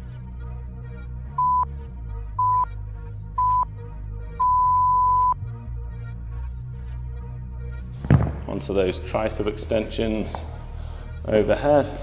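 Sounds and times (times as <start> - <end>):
background music with beat: 0.0 - 12.0
timer beeps: 1.4 - 1.7, 2.4 - 2.7, 3.4 - 3.7, 4.4 - 5.4.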